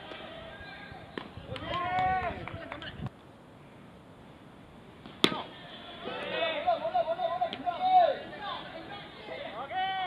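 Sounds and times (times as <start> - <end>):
bat cracking ball with ping: 5.0 - 5.5.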